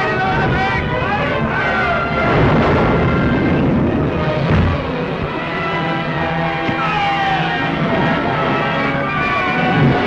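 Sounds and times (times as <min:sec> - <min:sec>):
men yelling and shouting: 0:00.0 - 0:05.1, 0:05.7 - 0:10.0
continuous low rumble: 0:00.0 - 0:10.0.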